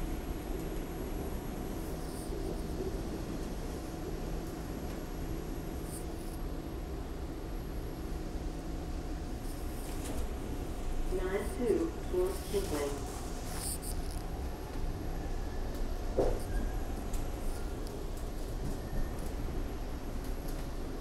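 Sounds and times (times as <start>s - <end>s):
thin steady whine: 0.0s - 21.0s
subway wheels rumbling on rails: 14.3s - 21.0s.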